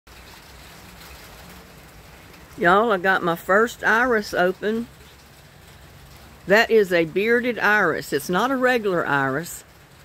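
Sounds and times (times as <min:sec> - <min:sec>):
light rain falling: 0:00.1 - 0:10.0.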